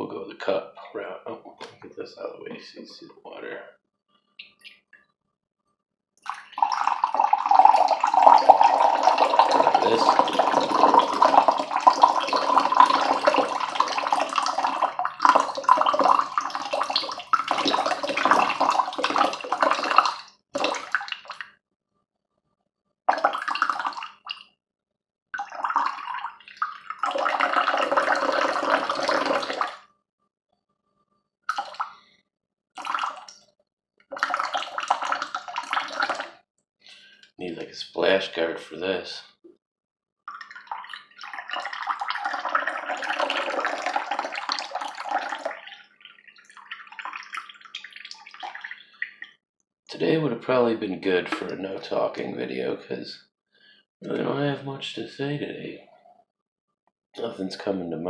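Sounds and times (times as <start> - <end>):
water pouring into a cup: 6.2 - 21.5, 23.1 - 24.5, 25.4 - 29.9, 31.5 - 32.2, 32.8 - 33.4, 34.1 - 37.2, 40.3 - 49.4, 51.0 - 52.3.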